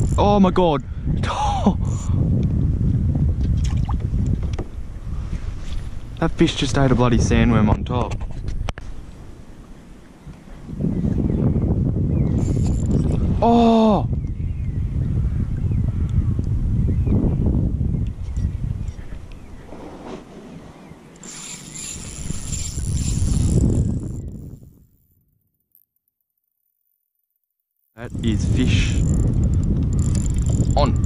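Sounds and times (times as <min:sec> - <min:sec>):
wind rumbling on microphone: 0:00.0 - 0:25.4, 0:28.0 - 0:31.0.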